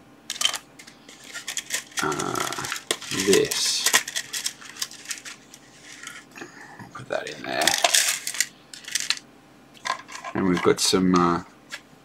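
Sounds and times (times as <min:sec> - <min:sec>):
small tools rattling in plastic drawer: 0:00.3 - 0:05.4, 0:07.6 - 0:09.2.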